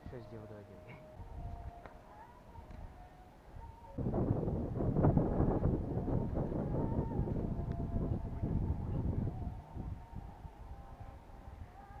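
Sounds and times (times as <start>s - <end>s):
wind buffeting microphone: 3.6s - 12.0s.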